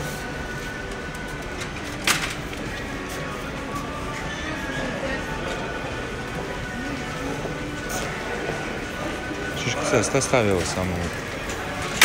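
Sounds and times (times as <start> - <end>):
background music: 0.0 - 12.0
steady crowd hubbub: 0.0 - 12.0.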